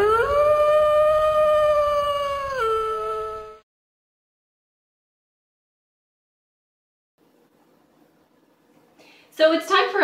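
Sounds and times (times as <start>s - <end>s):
dog howling: 0.0s - 3.6s.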